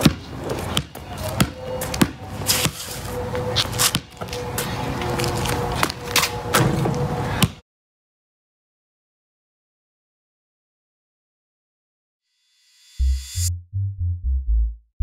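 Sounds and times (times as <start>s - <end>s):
basketball bouncing on asphalt: 0.0s - 4.7s.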